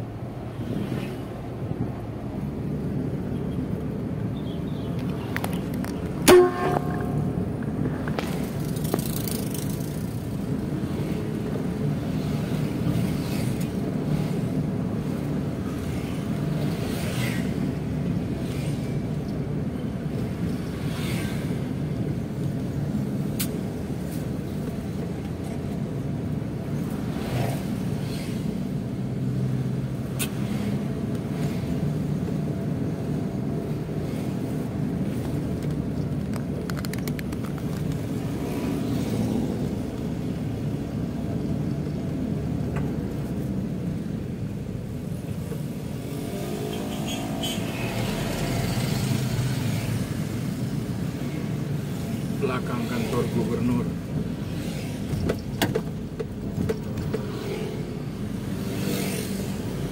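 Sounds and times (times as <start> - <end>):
car engine and road noise: 0.0 - 59.9
car horn beep: 6.2 - 7.4.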